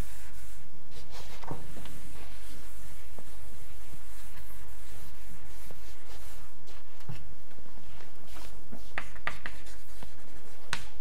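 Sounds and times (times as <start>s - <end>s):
chalk scratching on blackboard: 0.0s - 6.9s, 8.3s - 11.0s.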